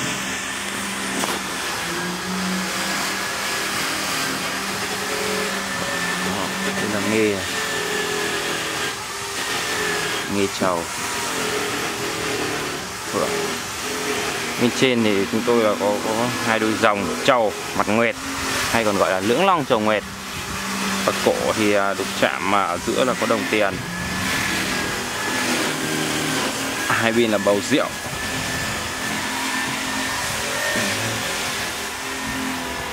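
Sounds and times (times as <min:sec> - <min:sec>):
motor-driven machine whirring: 0:00.0 - 0:32.9.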